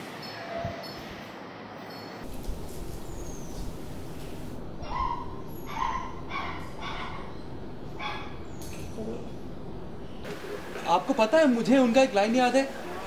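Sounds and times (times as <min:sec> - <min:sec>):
low background noise: 0:01.2 - 0:13.0
dog barking in high yips: 0:04.8 - 0:07.3.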